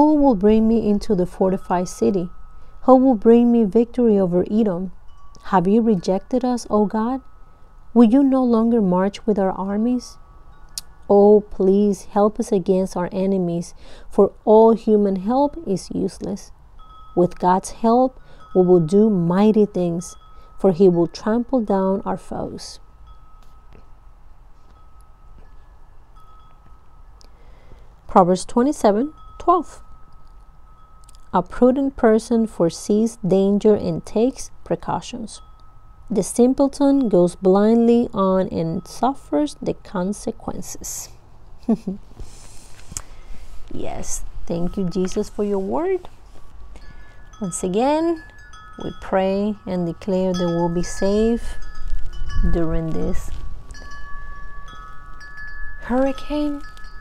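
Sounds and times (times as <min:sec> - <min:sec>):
wind chime ringing: 0:00.0 - 0:12.4, 0:16.5 - 0:27.9, 0:28.9 - 0:31.6, 0:35.2 - 0:39.4, 0:43.1 - 0:57.0
low rumble of wind: 0:00.0 - 0:57.0.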